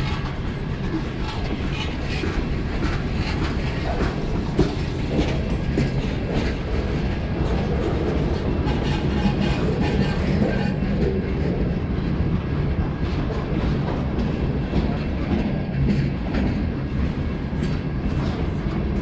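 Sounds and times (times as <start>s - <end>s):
train wheels rumbling on rails: 0.0s - 19.0s
wheels clicking over rail joints: 0.0s - 19.0s.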